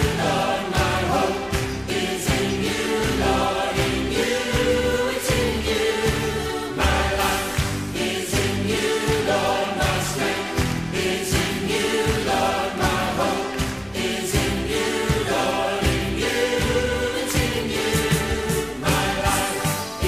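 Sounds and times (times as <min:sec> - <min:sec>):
choir singing gospel: 0:00.0 - 0:20.0.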